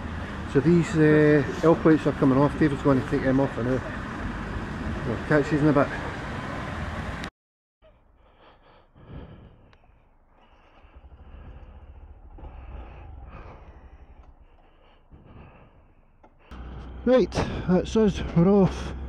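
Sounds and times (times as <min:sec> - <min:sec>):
faint low rumble: 0:07.9 - 0:19.0
muffled breathing in a helmet: 0:07.9 - 0:19.0.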